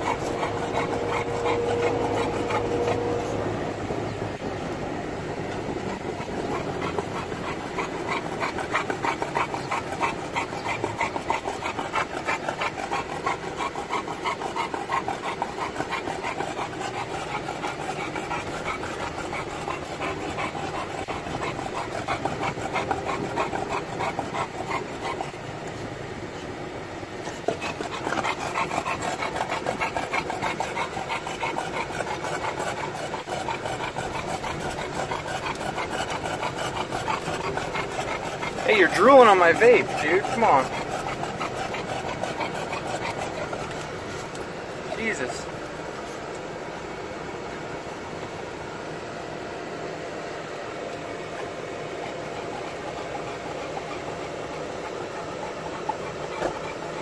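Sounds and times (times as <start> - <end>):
dog panting fast: 0.0 - 26.0, 27.2 - 48.9, 50.1 - 57.0.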